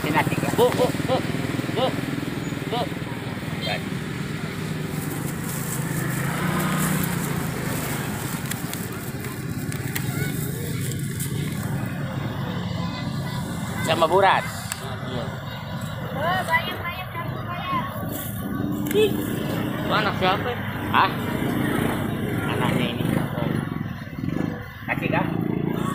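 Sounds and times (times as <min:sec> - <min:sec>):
motorcycle engine running: 0:00.0 - 0:25.9.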